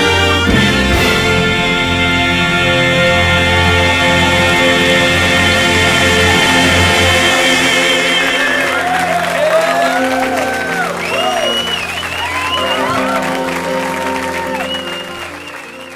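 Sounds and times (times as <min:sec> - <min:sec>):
gospel singers and instruments: 0:00.0 - 0:13.9
audience applause: 0:03.6 - 0:15.9.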